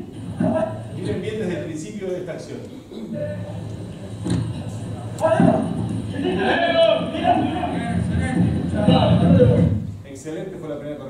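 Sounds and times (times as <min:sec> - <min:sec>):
voices over a loudspeaker: 0:04.8 - 0:09.8.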